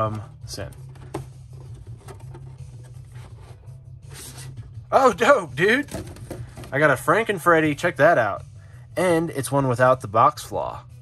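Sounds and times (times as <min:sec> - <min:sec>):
cardboard box rustling and scraping: 0:00.8 - 0:04.7.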